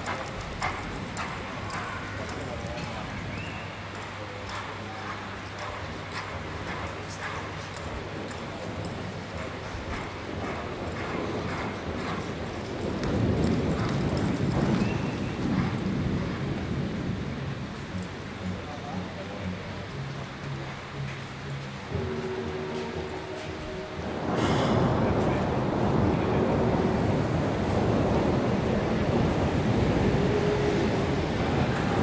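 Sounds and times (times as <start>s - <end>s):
horse hooves on sand: 0.0s - 32.0s
low rumbling noise: 0.0s - 32.0s.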